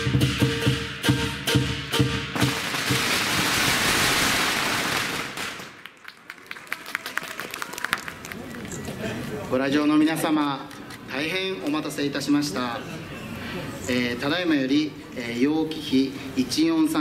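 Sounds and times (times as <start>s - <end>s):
drum gong and cymbals beating: 0.0s - 3.0s
crowd applauding: 4.8s - 9.3s.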